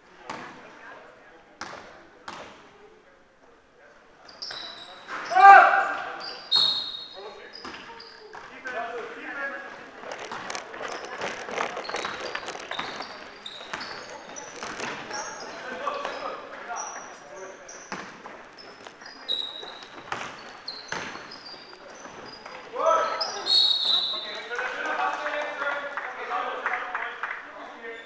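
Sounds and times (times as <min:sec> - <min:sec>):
sneakers squeaking on floor: 0:04.2 - 0:24.6
loud shout: 0:05.2 - 0:06.2
basketball bouncing: 0:11.8 - 0:15.2, 0:17.9 - 0:18.8, 0:19.6 - 0:21.4.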